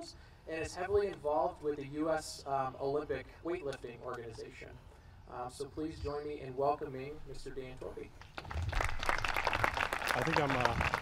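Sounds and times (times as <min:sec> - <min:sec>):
audience applauding: 0:08.3 - 0:11.0.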